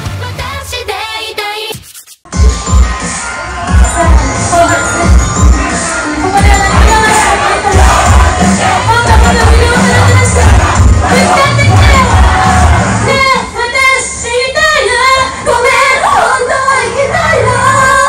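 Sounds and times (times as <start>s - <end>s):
live pop song with heavy bass: 0.0s - 18.0s
audience shouting along: 2.4s - 13.4s.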